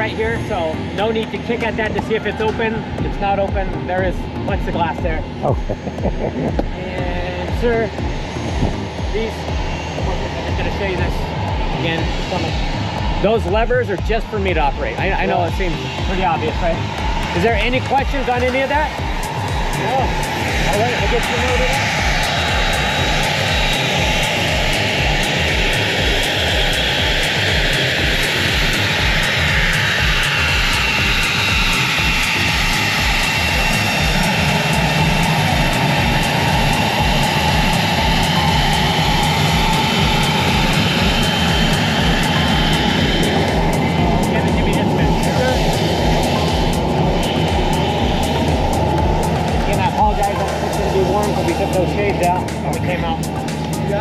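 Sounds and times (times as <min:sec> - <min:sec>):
jet engines whining: 0:00.0 - 0:54.0.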